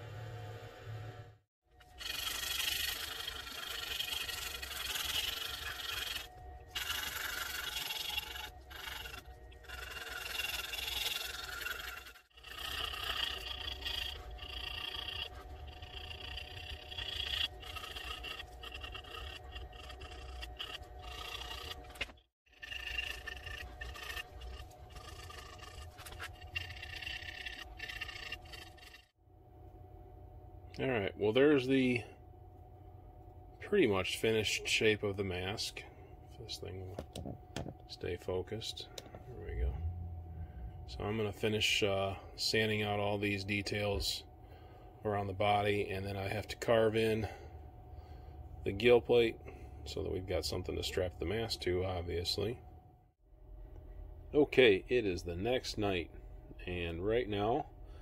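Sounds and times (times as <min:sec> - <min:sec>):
knife scraping wood: 0:01.9 - 0:29.1.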